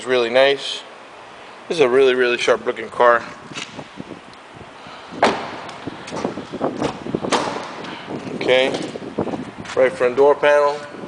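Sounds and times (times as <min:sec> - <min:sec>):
car door shutting with a thud: 0:05.2 - 0:07.8.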